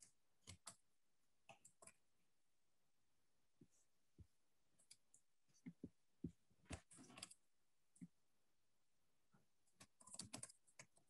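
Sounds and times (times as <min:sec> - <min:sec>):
keyboard typing: 0:09.8 - 0:11.0.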